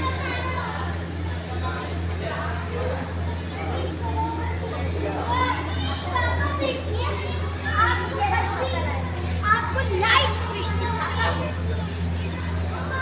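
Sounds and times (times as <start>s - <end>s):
children chattering and calling out: 0.0s - 13.0s
steady low hum: 0.0s - 13.0s.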